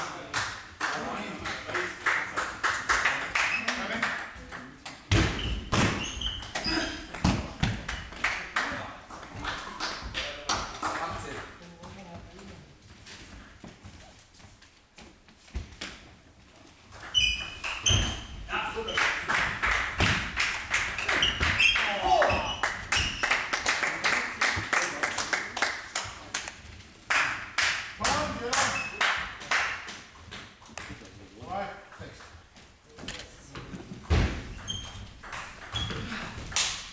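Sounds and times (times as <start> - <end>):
voices in a hall: 0.0 - 13.3, 17.8 - 34.6
hand claps: 0.2 - 4.2, 7.8 - 8.8, 18.9 - 30.0, 36.6 - 36.9
table tennis ball bouncing: 2.9 - 8.5, 16.9 - 23.6, 34.1 - 36.9.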